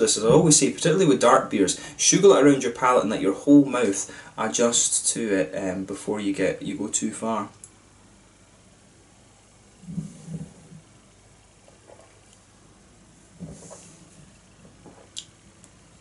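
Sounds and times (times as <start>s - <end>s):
breath out with low hum: 9.8s - 10.9s
man swallowing: 9.8s - 10.9s
small mouth clicks: 15.1s - 15.3s.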